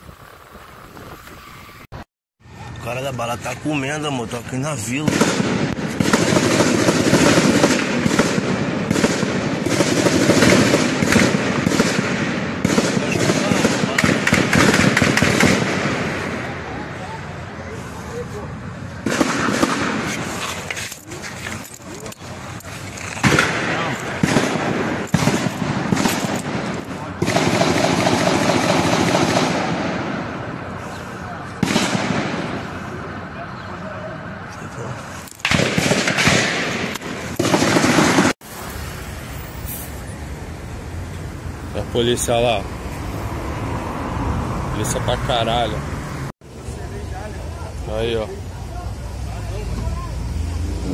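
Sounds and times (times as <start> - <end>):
automatic gunfire: 5.0 - 16.2, 19.0 - 20.1, 23.2 - 30.2, 31.6 - 32.4, 35.4 - 38.4.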